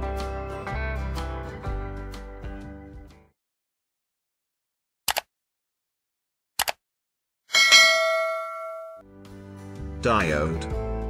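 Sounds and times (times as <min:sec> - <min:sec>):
bright notification chime: 0:07.6 - 0:09.0.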